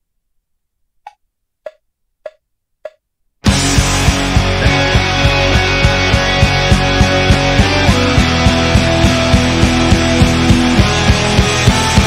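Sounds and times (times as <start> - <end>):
metronome wood-block clicks: 1.1 - 3.0.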